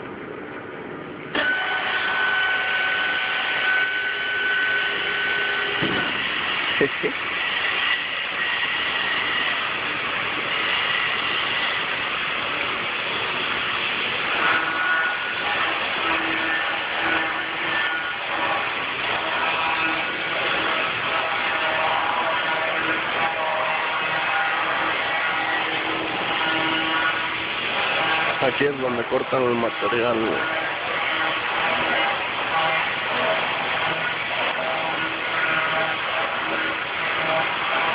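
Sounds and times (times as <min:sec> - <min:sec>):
stone-cutting machinery running: 0:01.3 - 0:37.9.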